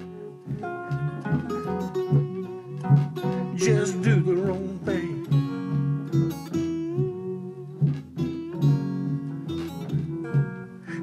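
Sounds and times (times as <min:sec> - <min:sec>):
acoustic guitar strumming: 0:00.0 - 0:11.0
slide string gliding between notes: 0:00.0 - 0:11.0.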